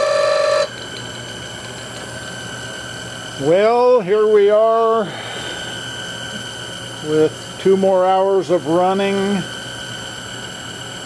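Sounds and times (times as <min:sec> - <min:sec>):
faint high whine: 0:00.0 - 0:00.7
engine running with hum: 0:00.0 - 0:11.0.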